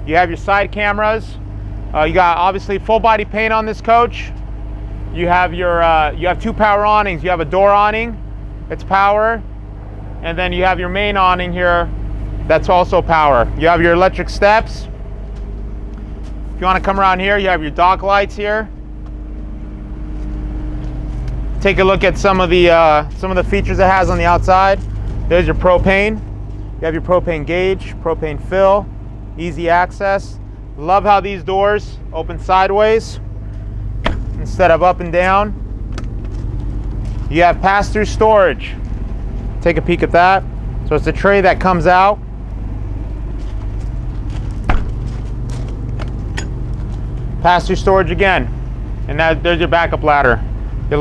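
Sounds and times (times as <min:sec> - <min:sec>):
diesel generator droning: 0:00.0 - 0:51.0.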